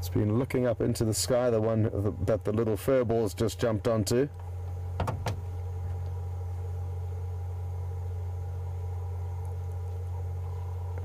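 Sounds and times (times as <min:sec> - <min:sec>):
engine idling hum: 0:00.0 - 0:11.0.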